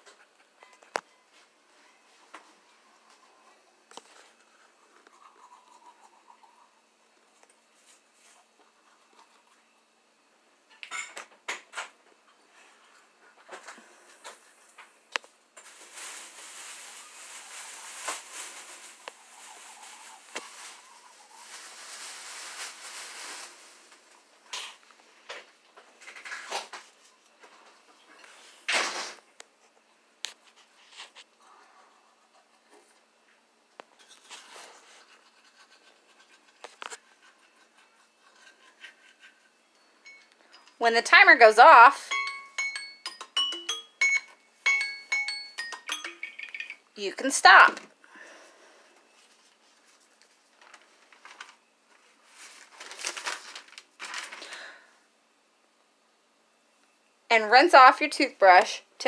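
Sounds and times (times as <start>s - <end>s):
toothbrush scrubbing teeth: 4.4s - 6.8s, 34.3s - 39.6s.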